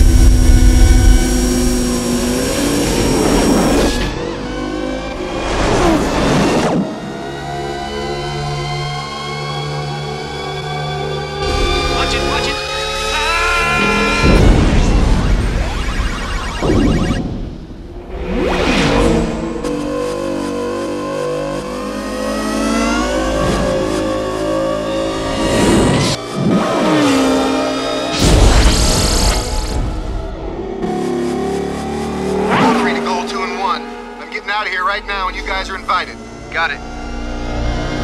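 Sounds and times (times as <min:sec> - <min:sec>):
electronic film score: 0:00.0 - 0:38.0.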